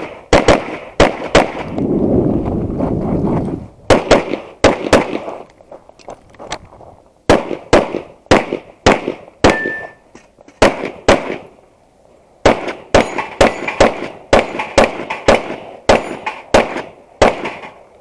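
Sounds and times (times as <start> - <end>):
pistol shots: 0.0 - 1.8, 3.9 - 5.4, 7.3 - 10.0, 10.6 - 11.5, 12.4 - 17.8
ring of struck steel target: 9.5 - 10.0.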